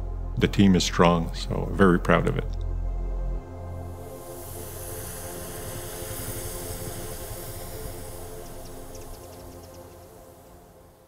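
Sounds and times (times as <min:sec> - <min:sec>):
background music with held tones: 0:00.0 - 0:11.0
snowmaking guns hissing: 0:03.9 - 0:11.0.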